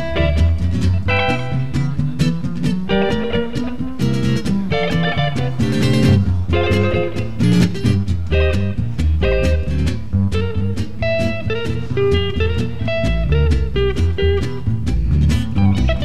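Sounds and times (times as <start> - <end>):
bass line: 0.0 - 16.0
electric guitar playing jazz: 0.0 - 16.0.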